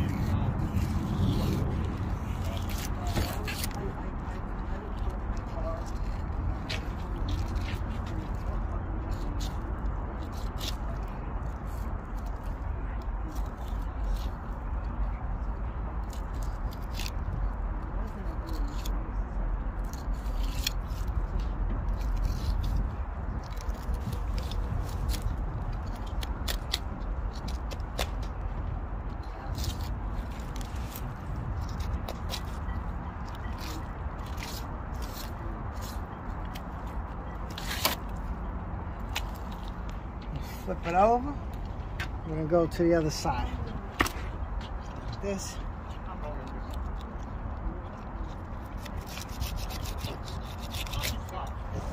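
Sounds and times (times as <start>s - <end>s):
steady low rumble: 0.0s - 51.9s
knife scraping along fish bones: 48.6s - 51.6s.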